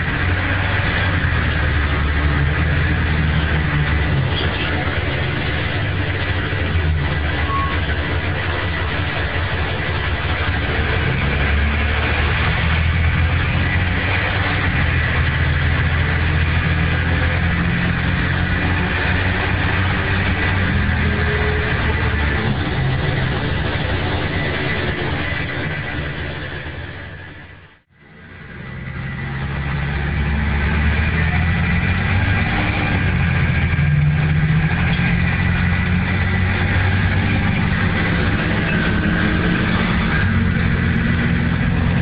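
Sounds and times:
bus diesel engine running: 0.0 - 42.0.

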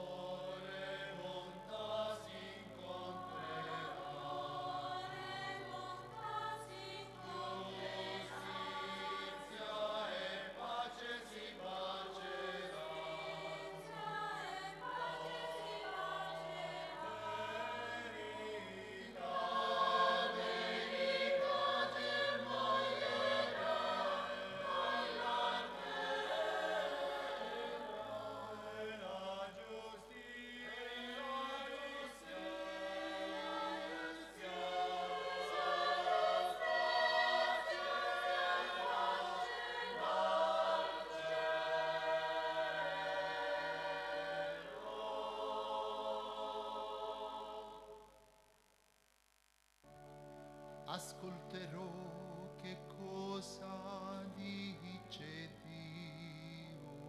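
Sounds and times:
mixed choir singing: 0.0 - 48.1.

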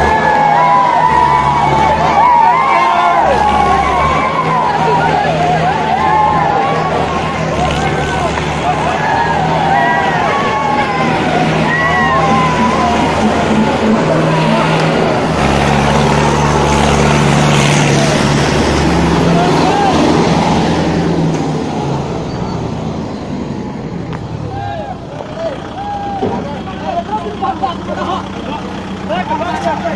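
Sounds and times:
people shouting: 0.0 - 21.2, 24.4 - 28.7
tractor diesel engines labouring: 0.0 - 29.9.

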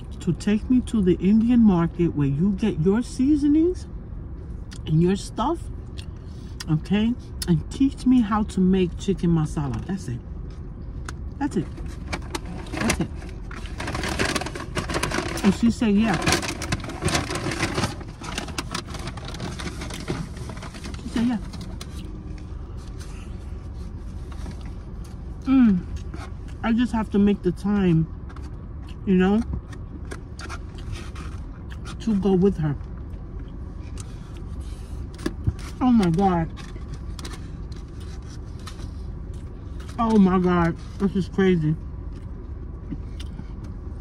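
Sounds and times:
low car cabin hum: 0.0 - 44.0
person chewing food: 24.4 - 26.6, 29.6 - 32.0, 42.0 - 43.8.

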